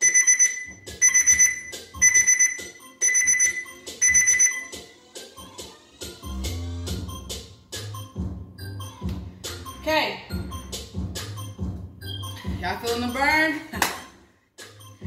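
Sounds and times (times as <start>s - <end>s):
timer alarm rapid high beeps: 0.0s - 4.8s
instrumental hip-hop beat: 0.7s - 15.0s.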